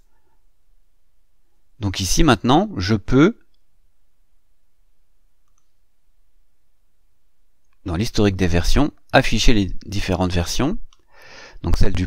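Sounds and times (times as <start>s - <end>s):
faint low hum: 0.0s - 12.0s
mouse click: 5.4s - 5.8s.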